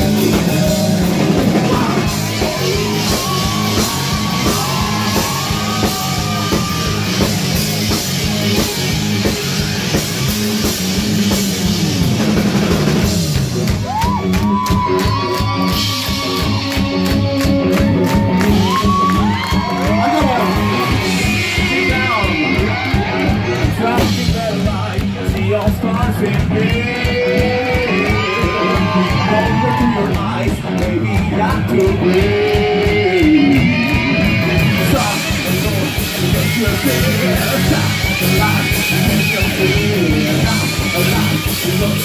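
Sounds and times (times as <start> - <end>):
drum kit: 0.0 - 42.0
electric guitars: 0.0 - 42.0.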